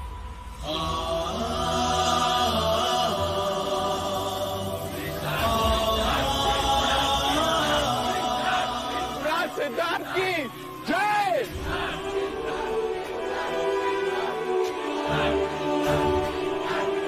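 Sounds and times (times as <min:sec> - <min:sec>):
chorus of voices chanting: 0:00.0 - 0:17.0.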